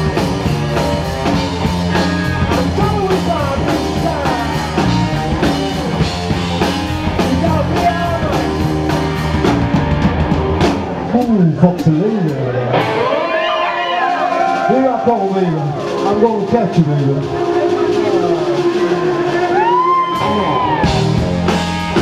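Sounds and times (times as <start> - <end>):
bass guitar: 0.0 - 22.0
drum kit: 0.0 - 22.0
electric guitar: 0.0 - 22.0
person singing: 1.8 - 5.6, 7.0 - 8.8.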